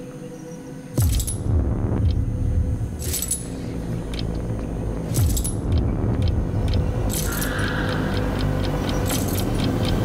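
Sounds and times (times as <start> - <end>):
held hum: 0.0 - 10.0
low rumbling drone: 0.0 - 10.0
steady ticking: 1.0 - 10.0.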